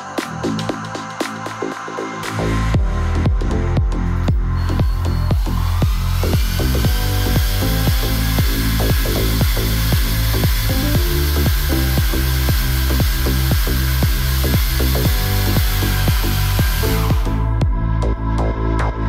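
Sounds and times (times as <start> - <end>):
electronic music with steady beat: 0.0 - 19.0
power drill whining: 4.0 - 17.6.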